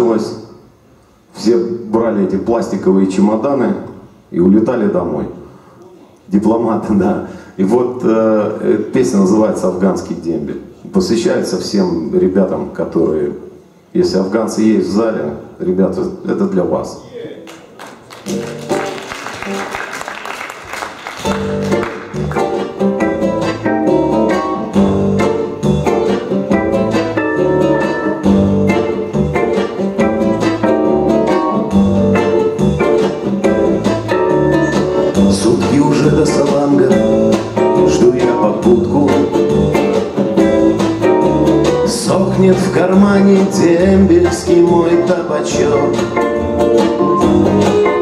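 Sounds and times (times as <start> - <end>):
acoustic guitar: 18.2 - 19.9, 21.1 - 48.0.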